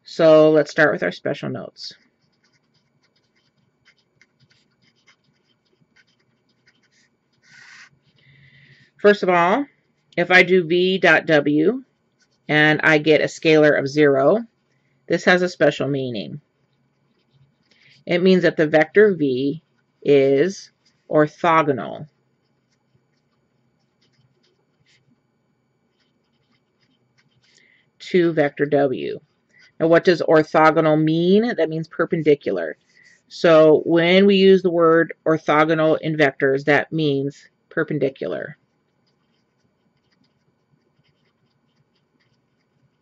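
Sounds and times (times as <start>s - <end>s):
marker pen writing on paper: 1.9s - 8.2s, 9.2s - 14.7s, 16.6s - 18.7s, 19.6s - 25.1s, 25.8s - 27.7s, 38.0s - 43.0s.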